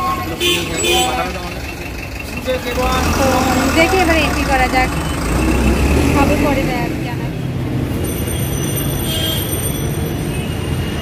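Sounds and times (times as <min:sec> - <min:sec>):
voices talking: 0:00.0 - 0:07.4
street traffic rumble: 0:00.0 - 0:11.0.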